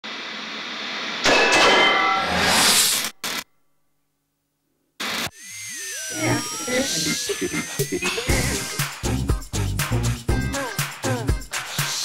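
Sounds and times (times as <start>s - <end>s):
static noise burst: 5.0s - 5.3s, 6.1s - 9.0s
television title music: 6.1s - 11.1s.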